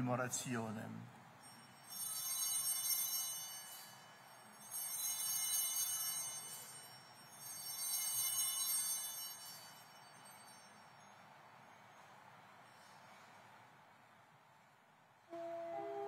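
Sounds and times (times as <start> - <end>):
small altar bells ringing: 1.3 - 12.9.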